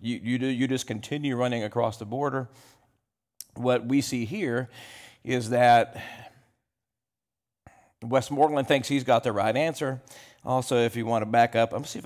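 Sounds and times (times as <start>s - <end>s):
man breathing: 2.5s - 3.0s, 4.7s - 5.3s, 5.9s - 6.6s, 7.6s - 8.0s, 10.0s - 10.4s.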